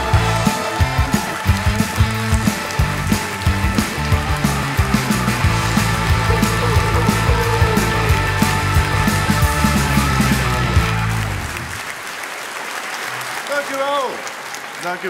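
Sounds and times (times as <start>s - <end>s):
live band instrumental: 0.0s - 11.8s.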